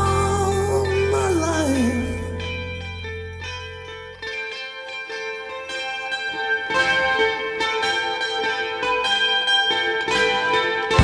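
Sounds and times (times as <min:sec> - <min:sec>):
clean electric guitar notes: 0:00.0 - 0:04.6.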